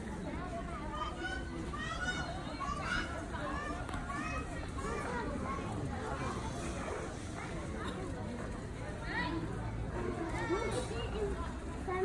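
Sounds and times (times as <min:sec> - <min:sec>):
distant voices chattering: 0:00.0 - 0:12.0.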